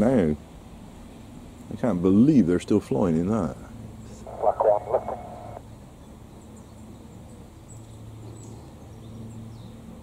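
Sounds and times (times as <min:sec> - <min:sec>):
distant helicopter drone: 0:03.5 - 0:05.7
scanner radio transmission: 0:04.2 - 0:05.6.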